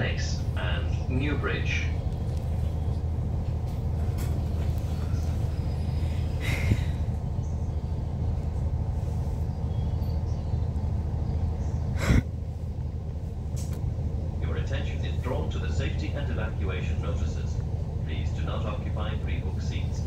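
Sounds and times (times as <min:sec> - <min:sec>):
diesel railcar engine drone: 0:00.0 - 0:20.0.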